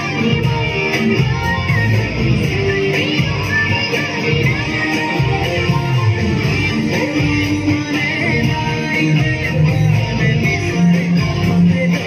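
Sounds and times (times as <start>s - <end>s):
backing music: 0.0s - 12.0s
electric guitar lead solo: 0.0s - 12.0s.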